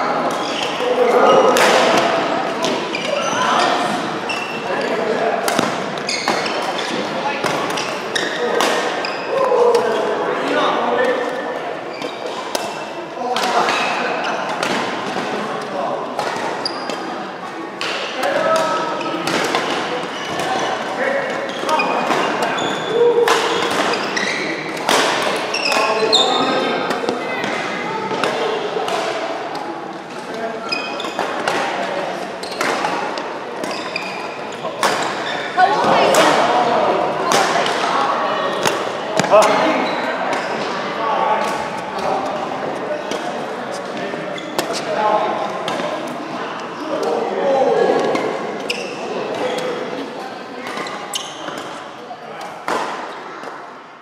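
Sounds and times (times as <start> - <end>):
voices echoing in hall: 0.0 - 54.0
racket hitting shuttlecock: 5.4 - 9.1, 17.8 - 20.7, 23.2 - 25.9, 38.5 - 39.6.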